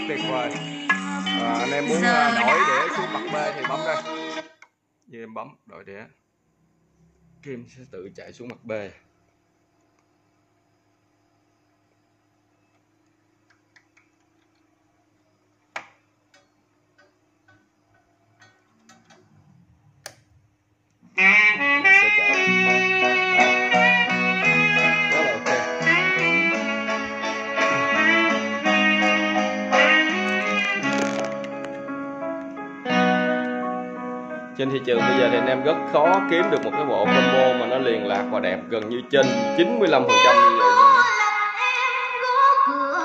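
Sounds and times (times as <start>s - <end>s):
music through speakers: 0.0s - 4.5s, 21.2s - 32.0s
turntable hum: 6.3s - 33.7s.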